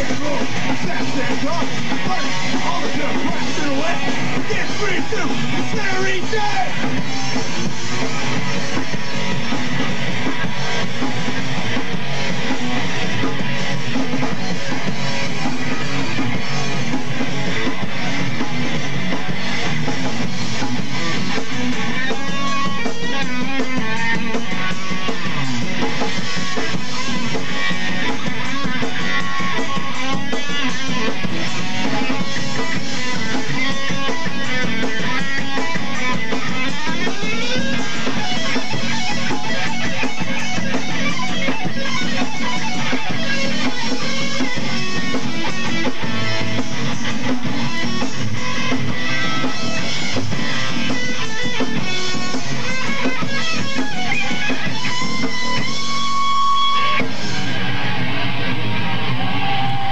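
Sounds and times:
bass guitar: 0.0 - 59.9
drum kit: 0.0 - 59.9
electric guitars: 0.0 - 59.9.

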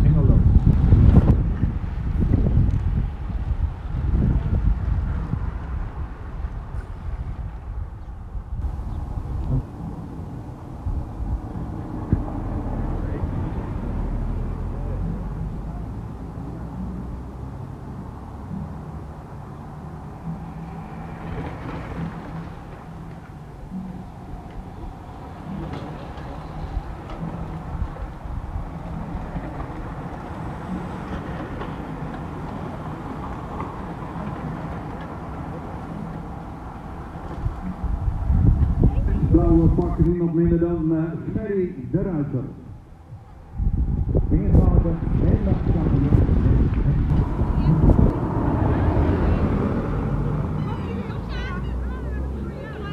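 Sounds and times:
wind on microphone: 0.0 - 41.5, 42.5 - 52.4.

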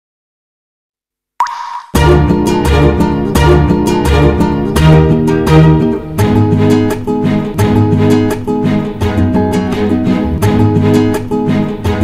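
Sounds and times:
cartoon pop with rising pitch: 1.4 - 2.0
plucked-string music: 2.0 - 12.0.

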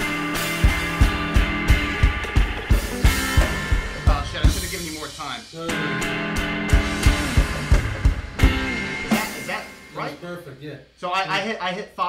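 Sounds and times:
band jamming: 0.0 - 10.4
cymbal crash: 6.7 - 10.2.

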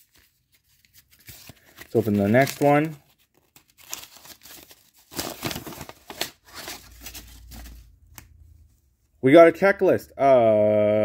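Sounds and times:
paper wrapping tearing and crinkling: 0.0 - 7.8.

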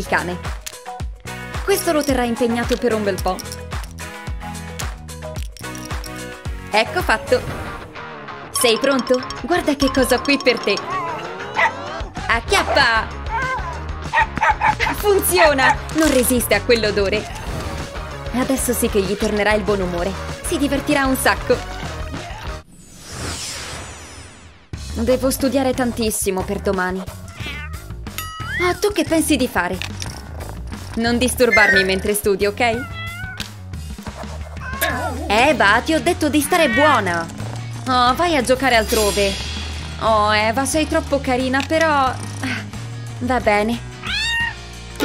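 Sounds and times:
background music: 0.0 - 22.7, 24.7 - 45.0
small dog yipping: 13.3 - 14.9, 31.5 - 32.1, 32.8 - 33.4, 34.2 - 35.3, 44.0 - 44.6
cat meowing: 27.0 - 27.9, 32.7 - 33.5, 34.5 - 35.3, 44.0 - 44.7.

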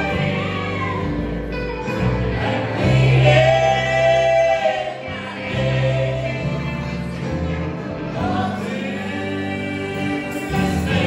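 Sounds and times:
backing voices singing: 0.0 - 11.0.

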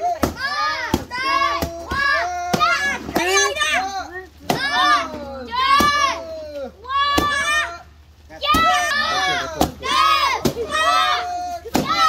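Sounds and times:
children shouting and cheering: 0.0 - 12.0
stick knocking paper pinata: 0.1 - 3.5, 11.7 - 12.0.

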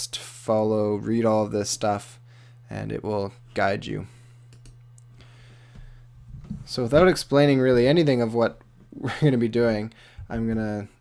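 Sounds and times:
steady low hum: 0.0 - 11.0
computer mouse clicks: 4.5 - 5.1.

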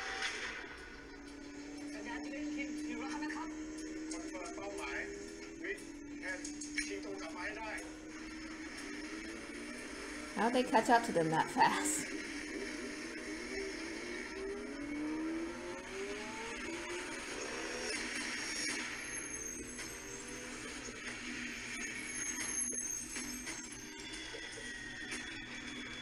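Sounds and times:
background music: 0.0 - 26.0
car engines accelerating: 0.0 - 26.0.

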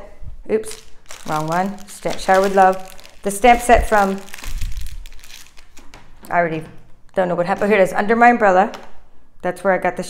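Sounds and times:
craft supplies crinkling and rustling: 0.6 - 6.4.

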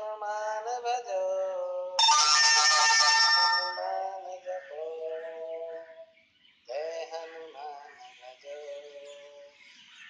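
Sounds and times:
metallic bell chime: 2.0 - 4.1.

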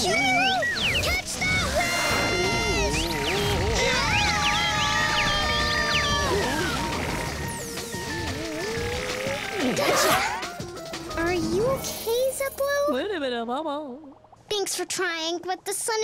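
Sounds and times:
cartoon music: 0.0 - 12.9.

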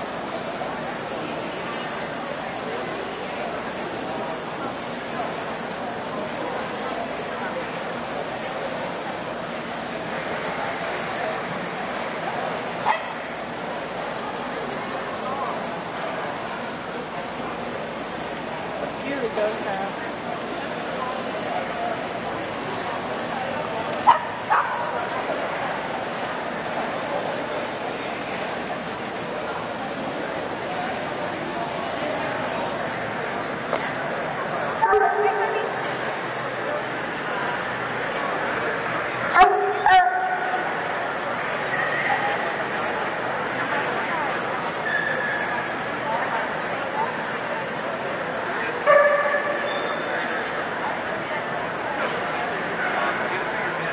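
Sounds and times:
murmur of crowd voices: 0.0 - 53.9
people talking: 0.0 - 53.9
dog barking: 24.1 - 24.9, 48.9 - 49.6.

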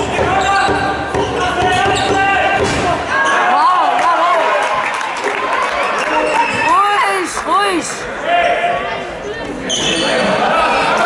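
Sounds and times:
ball bouncing on hall floor: 0.0 - 3.0
shoes squeaking: 9.6 - 10.2.

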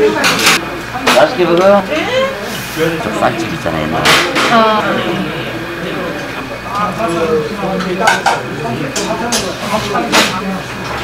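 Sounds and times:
voices talking: 0.1 - 10.8.

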